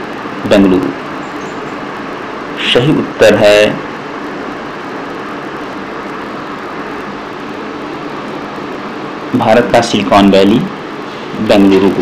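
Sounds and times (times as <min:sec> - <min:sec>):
background hiss: 0:00.0 - 0:12.0
faint low hum: 0:00.0 - 0:12.0.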